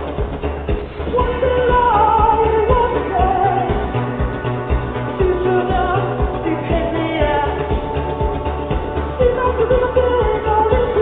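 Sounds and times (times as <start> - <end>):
steady beat: 0.0 - 11.0
synth bass: 0.0 - 11.0
man singing: 1.1 - 4.0, 5.2 - 8.0, 9.2 - 11.0.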